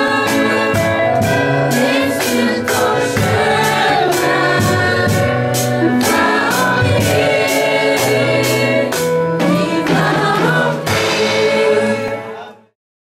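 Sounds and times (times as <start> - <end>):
children's choir singing: 0.0 - 12.5
accompaniment with steady beat: 0.0 - 12.7.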